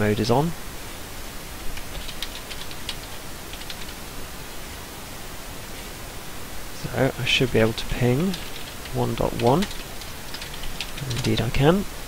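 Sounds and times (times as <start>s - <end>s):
background hiss: 0.0s - 12.0s
keyboard and mouse clicks: 1.8s - 4.0s, 8.2s - 11.5s.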